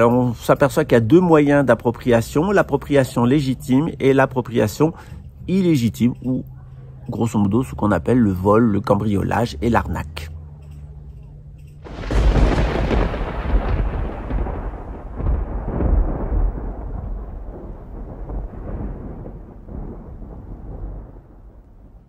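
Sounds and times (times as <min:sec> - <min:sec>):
thunder crack and rumble: 0:11.8 - 0:22.0.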